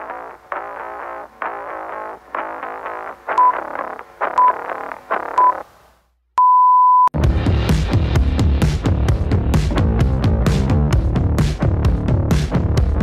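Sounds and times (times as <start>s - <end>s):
interval timer beeps: 3.4s - 3.7s
background music: 7.2s - 13.0s.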